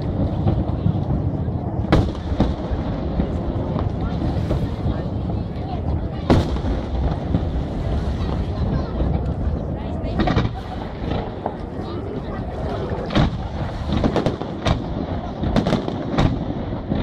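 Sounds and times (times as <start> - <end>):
distant firework bangs: 0.0 - 17.0
low rumbling: 0.0 - 17.0.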